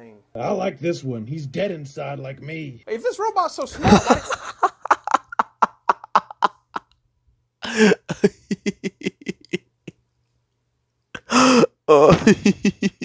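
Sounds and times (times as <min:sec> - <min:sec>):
man laughing hard: 0:03.8 - 0:06.9, 0:07.6 - 0:10.0, 0:11.2 - 0:13.0
gasp for breath: 0:07.6 - 0:08.1, 0:11.2 - 0:11.8.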